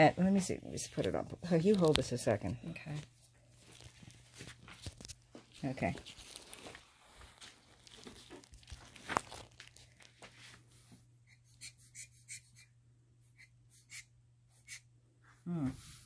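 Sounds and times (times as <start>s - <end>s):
handling rustle: 2.8s - 10.7s.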